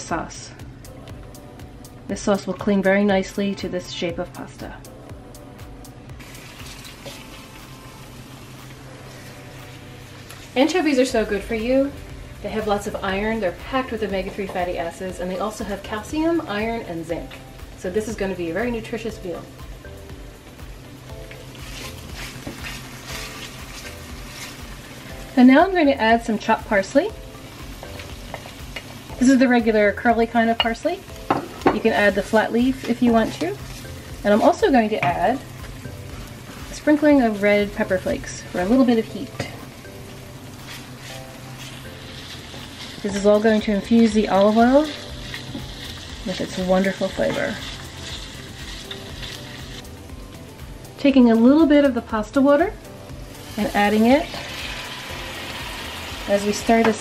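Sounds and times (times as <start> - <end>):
soft background music: 0.0 - 57.0
garlic sizzling in oil: 6.2 - 57.0
wooden spoon stirring: 31.8 - 36.8, 40.5 - 49.8.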